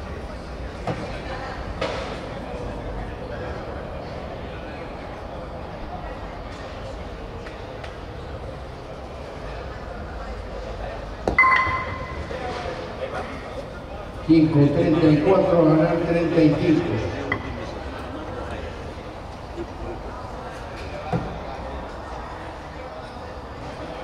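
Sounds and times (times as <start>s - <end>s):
murmur of voices in a hall: 0.0s - 24.0s.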